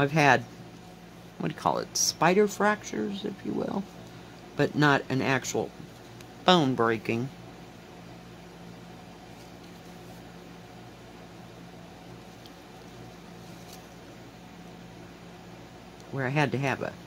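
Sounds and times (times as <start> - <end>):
low room hum: 0.0 - 17.0
needle and floss through fabric: 9.0 - 10.5, 12.0 - 14.2.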